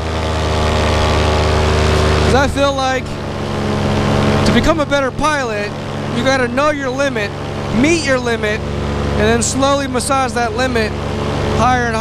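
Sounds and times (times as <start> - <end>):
paramotor engine and propeller running: 0.0 - 12.0.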